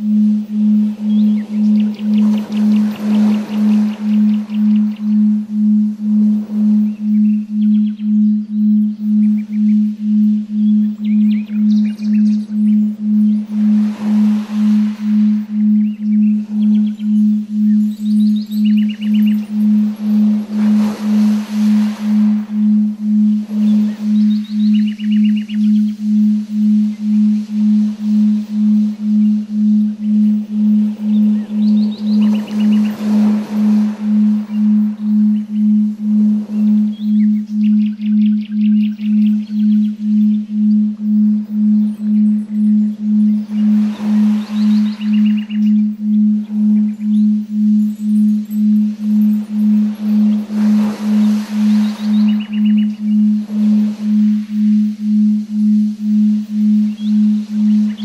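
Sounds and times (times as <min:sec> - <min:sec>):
bird-like chirping trills: 0:00.0 - 0:58.0
pulsing low electronic tone: 0:00.0 - 0:58.0
soft swelling hiss: 0:00.0 - 0:58.0.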